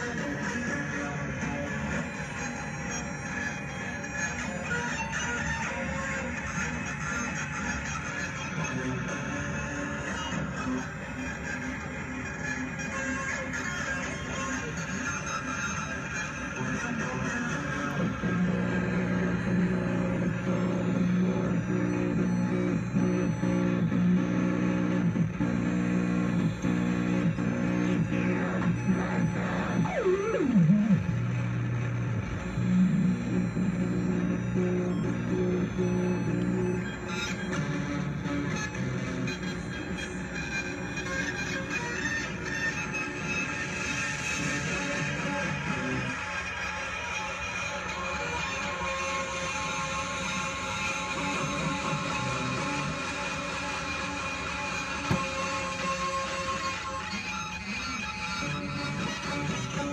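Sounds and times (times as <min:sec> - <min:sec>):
synthesizer drone: 0:00.0 - 0:59.9
low synthesizer drone: 0:17.5 - 0:42.4
synthesizer lead gliding in pitch: 0:17.8 - 0:40.2.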